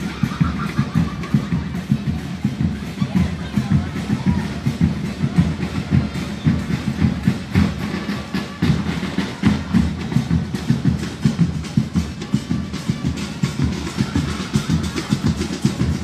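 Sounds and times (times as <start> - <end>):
bass drums and percussion beating: 0.0 - 16.0
crowd voices: 0.0 - 16.0.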